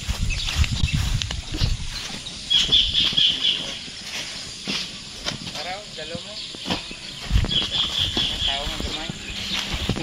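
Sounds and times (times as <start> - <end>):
people's voices: 5.2 - 10.0.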